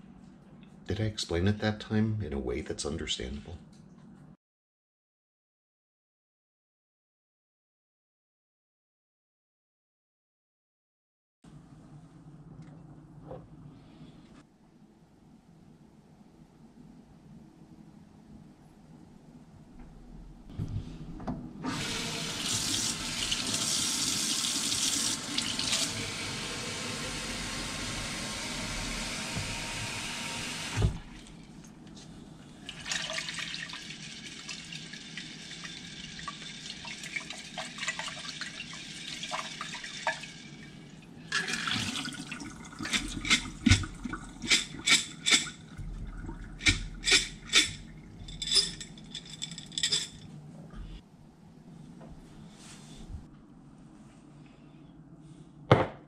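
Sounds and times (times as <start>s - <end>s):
water draining into a steel sink: 32.7s - 44.8s
jar shaken with sharp splashes: 42.8s - 45.6s, 46.3s - 50.2s.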